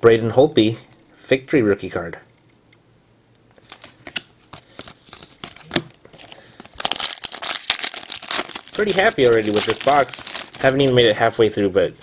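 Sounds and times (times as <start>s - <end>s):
trading cards clicking and rustling: 3.6s - 11.1s
plastic wrapper crinkling: 4.6s - 11.2s.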